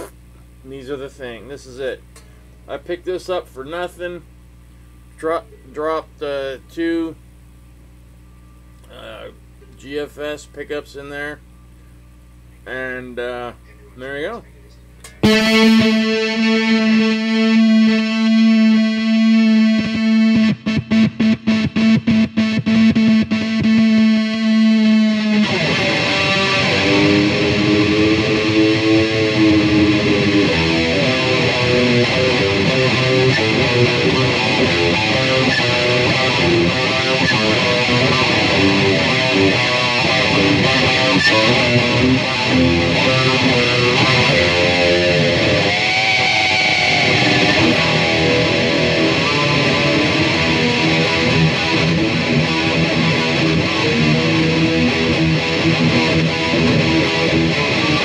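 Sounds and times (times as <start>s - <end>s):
distorted electric guitar riffing: 0.0s - 0.2s, 15.0s - 58.0s.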